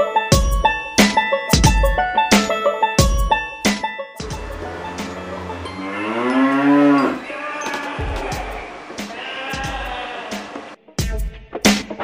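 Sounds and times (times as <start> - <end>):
music with a beat: 0.0 - 4.6, 11.0 - 12.0
cow mooing: 4.2 - 10.7.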